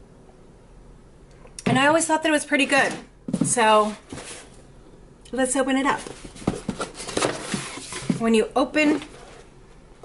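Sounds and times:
cardboard box being opened: 6.0 - 8.2.

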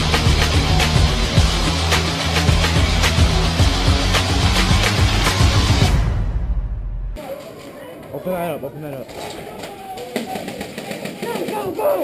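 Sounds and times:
people talking indistinctly: 7.2 - 12.0.

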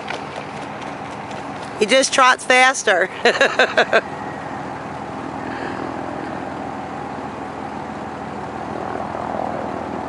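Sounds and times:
horse hoofbeats on gravel: 0.0 - 2.4
person speaking: 1.8 - 4.0.

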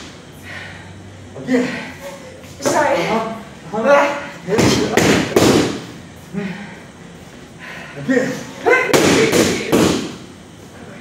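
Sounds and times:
boxing gloves striking mitts: 4.5 - 5.9, 8.9 - 10.2.

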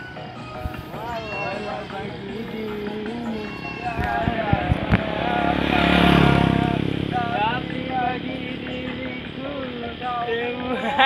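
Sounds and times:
motorcycle passing: 0.0 - 11.0
song from portable speaker: 0.0 - 11.0.

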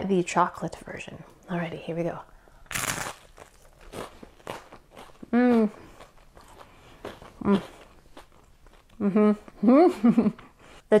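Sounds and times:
woman chewing crisp toast: 2.7 - 9.0
woman humming: 5.2 - 5.9, 9.0 - 10.3.

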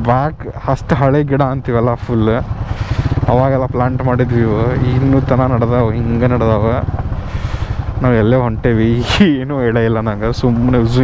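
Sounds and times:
motorcycle engine running: 0.0 - 11.0
man speaking or humming: 3.2 - 6.9, 8.0 - 11.0.

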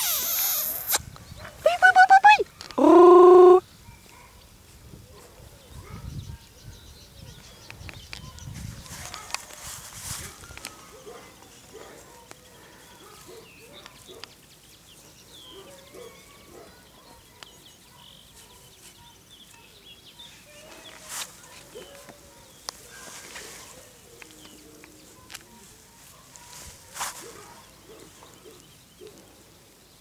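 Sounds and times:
faint birdsong: 2.4 - 30.0
rustling and handling noises: 8.0 - 15.2, 20.4 - 29.2.

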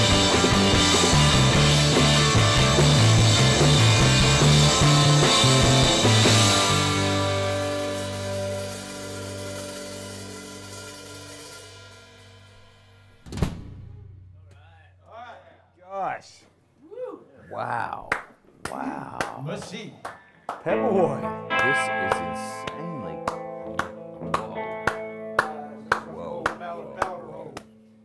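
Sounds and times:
live rock band playing: 0.0 - 13.0, 20.7 - 26.1.

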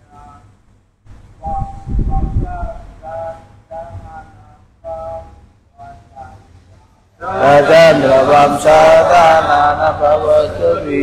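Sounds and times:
group chanting: 7.2 - 11.0.

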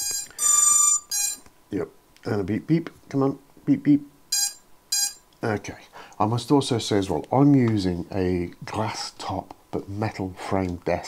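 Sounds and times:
quadcopter electronic beeps: 0.0 - 1.4, 4.3 - 5.2.

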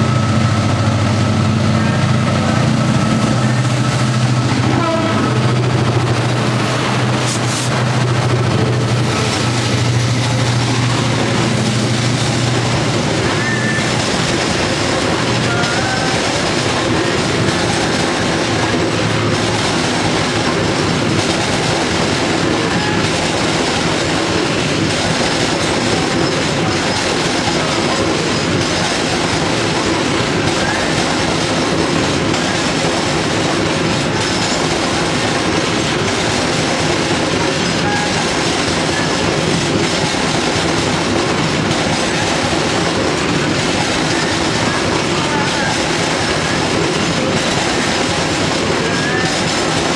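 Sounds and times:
train wheels rumbling on rail: 0.0 - 49.9
clickety-clack over rail joints: 1.8 - 49.9.

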